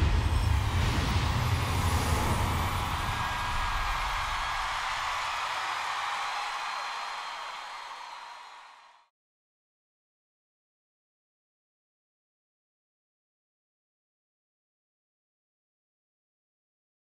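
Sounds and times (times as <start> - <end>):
bright shimmering wash: 0.0 - 5.3.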